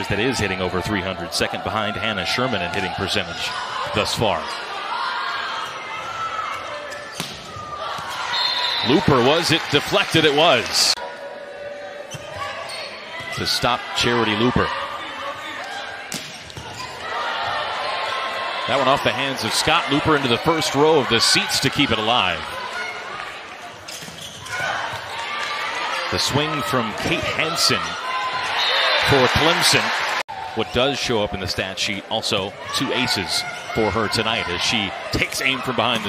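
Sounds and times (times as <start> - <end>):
arena crowd noise: 0.0 - 36.0.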